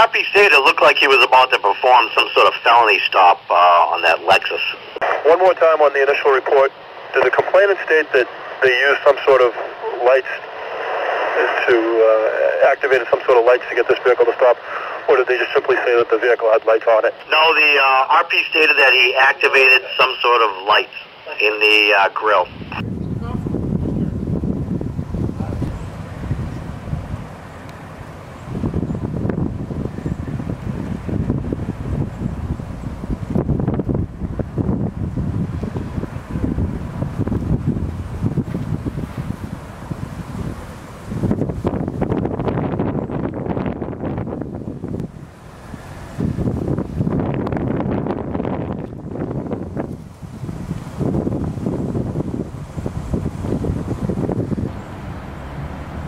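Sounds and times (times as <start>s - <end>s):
wind buffeting microphone: 22.5s - 56.0s.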